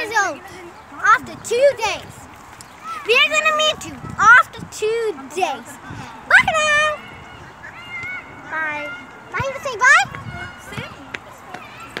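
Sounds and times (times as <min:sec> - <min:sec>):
children and women chatting: 0:00.0 - 0:12.0.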